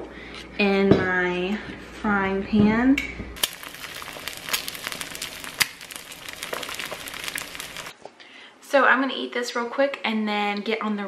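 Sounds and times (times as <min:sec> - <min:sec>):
eggs sizzling in a frying pan: 0:03.4 - 0:08.0.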